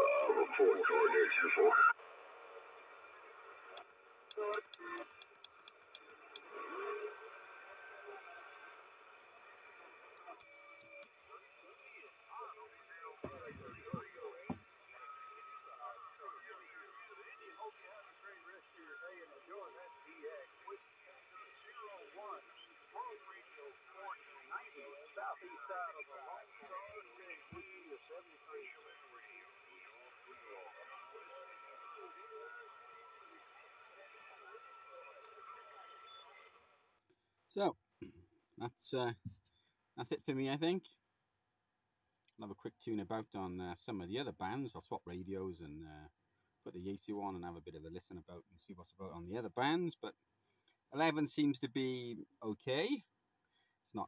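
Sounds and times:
radio band hiss: 0.0s - 36.6s, 38.6s - 39.3s, 51.0s - 52.1s
steady whistle: 9.5s - 18.2s
garbled distant radio voices: 10.2s - 36.6s.

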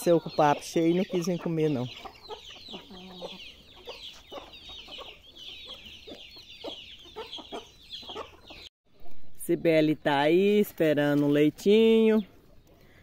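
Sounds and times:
chickens clucking and calling: 0.0s - 8.7s.

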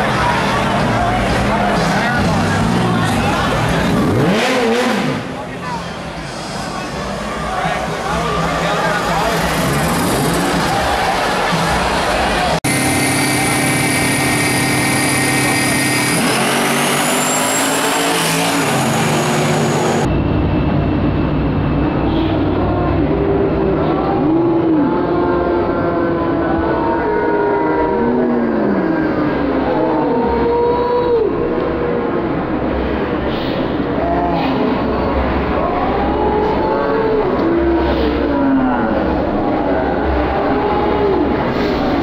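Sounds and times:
cars racing through gears: 0.0s - 20.2s
drag car engines revving: 0.0s - 42.0s.

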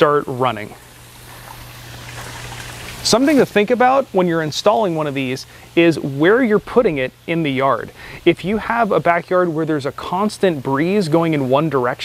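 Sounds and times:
misting nozzles spraying hiss: 0.0s - 11.2s
low steady hum: 0.0s - 12.0s.

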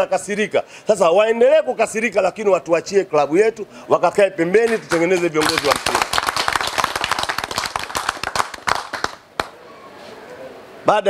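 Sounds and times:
man speaking: 0.0s - 6.0s
people clapping: 4.6s - 9.6s.

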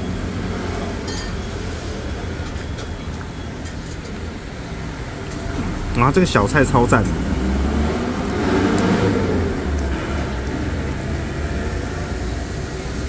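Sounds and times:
road traffic rumbling: 0.0s - 13.0s
vehicle passing close: 4.4s - 13.0s.

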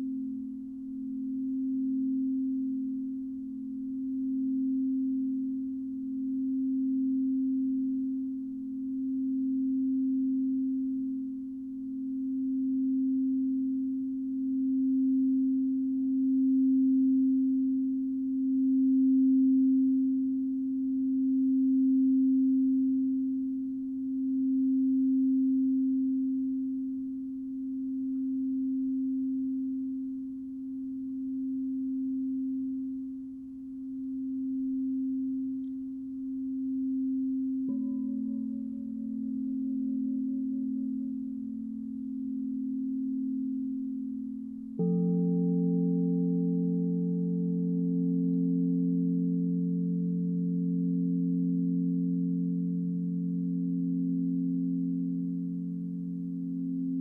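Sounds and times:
singing bowl low tone: 0.0s - 57.0s.

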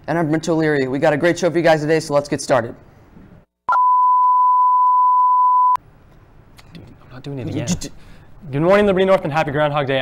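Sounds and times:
steady test tone beep: 3.7s - 5.8s.

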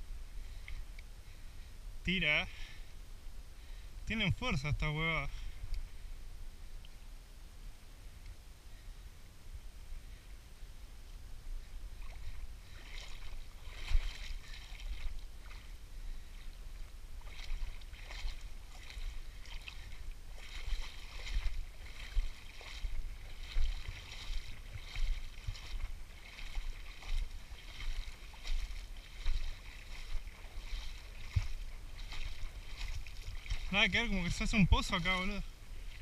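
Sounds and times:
shallow river water splashing: 0.0s - 36.0s
wind rumble on microphone: 5.4s - 36.0s.

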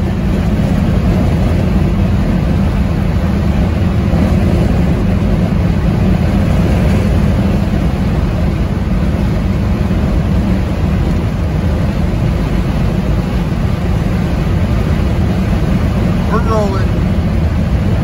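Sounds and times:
car engine cruising: 0.0s - 18.0s
wind noise: 0.0s - 18.0s.

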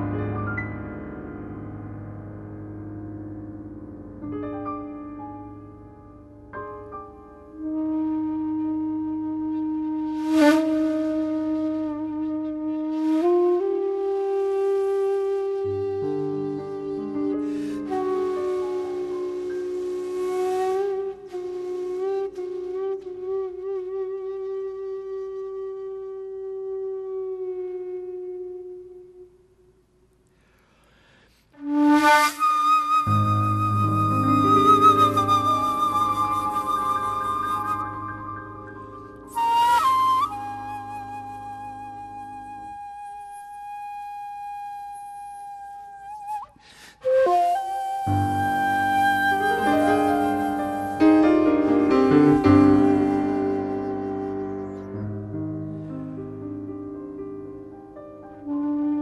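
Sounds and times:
sustained piano chords: 0.0s - 10.0s, 33.1s - 42.3s, 48.1s - 59.0s
keyboard accompaniment: 0.0s - 24.0s, 31.6s - 44.8s, 46.6s - 59.0s
shakuhachi long held note: 7.5s - 29.6s, 31.6s - 55.3s.

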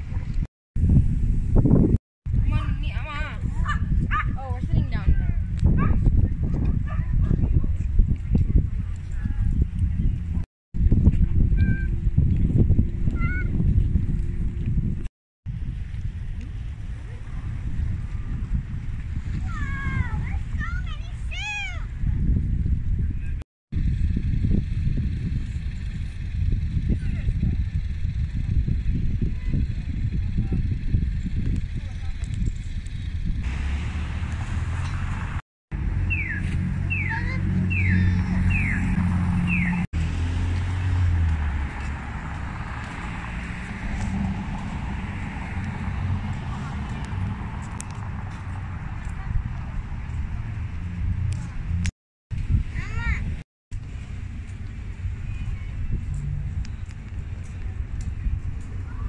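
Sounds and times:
wind buffeting microphone: 0.0s - 59.0s
passing traffic: 2.4s - 10.5s, 32.6s - 51.9s, 52.5s - 59.0s
car engine humming: 33.5s - 51.9s.

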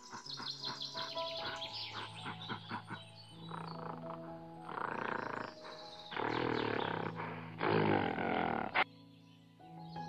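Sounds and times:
soft background music: 0.0s - 10.0s
rough animal roars: 3.5s - 8.8s.

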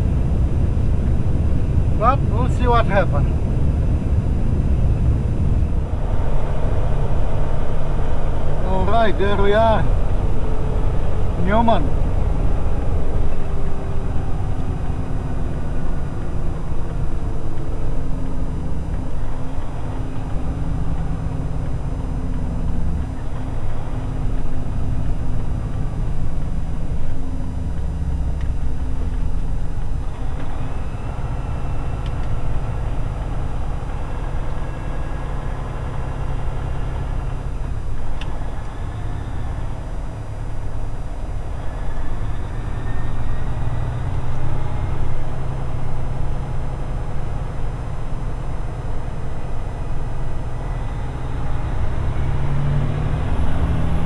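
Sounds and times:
truck diesel engine rumbling: 0.0s - 54.0s.

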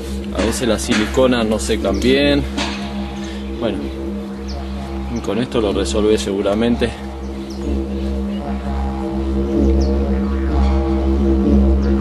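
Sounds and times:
low drone with held tones: 0.0s - 12.0s.

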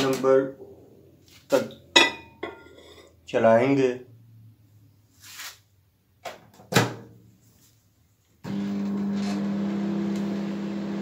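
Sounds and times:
microwave oven humming: 8.5s - 11.0s.

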